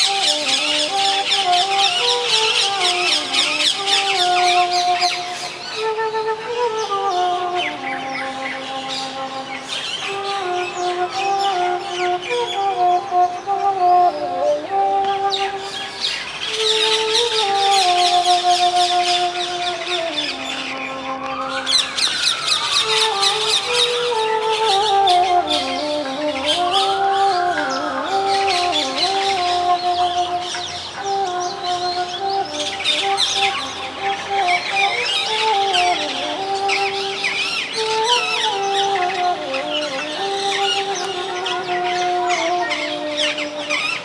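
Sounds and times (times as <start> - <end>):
bamboo flute melody: 0.0 - 44.0
birds chirping: 0.0 - 44.0.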